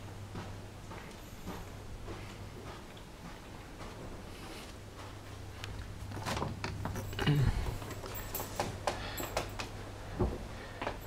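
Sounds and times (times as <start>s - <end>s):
steady low hum: 0.0s - 11.0s
footsteps on carpet: 0.3s - 6.6s.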